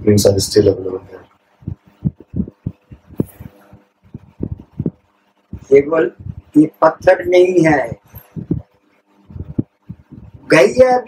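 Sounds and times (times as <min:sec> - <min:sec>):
faint steady hum: 0:00.0 - 0:11.0
soft low thumps: 0:01.6 - 0:06.6, 0:07.9 - 0:10.5.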